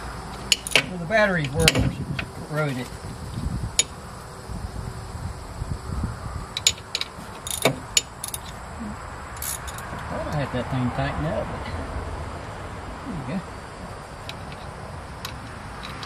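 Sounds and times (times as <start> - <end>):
metal tool clicking on nut: 6.6 - 8.6.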